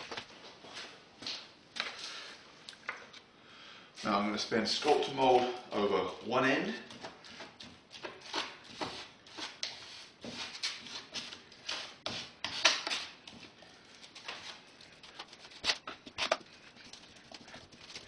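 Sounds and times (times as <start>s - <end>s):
modeling compound smearing and scraping: 7.4s - 13.6s.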